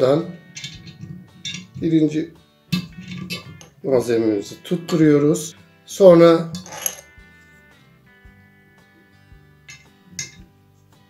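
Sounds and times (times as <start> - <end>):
quiet guitar music: 0.0 - 11.0
clicks and knocks against glass jar: 0.6 - 1.8, 9.7 - 10.5.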